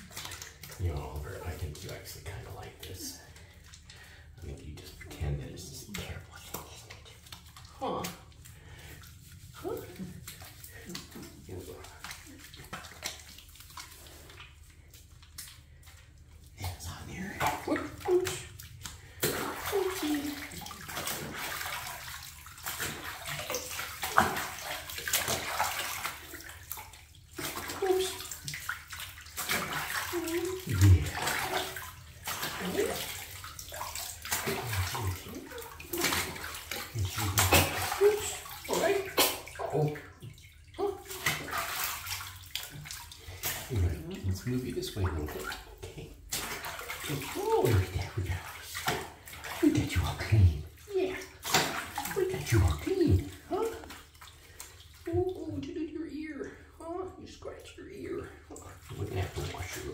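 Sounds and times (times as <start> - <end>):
scrubbing strokes: 0.0 - 55.3
bathwater splashing in a tub: 0.0 - 59.9.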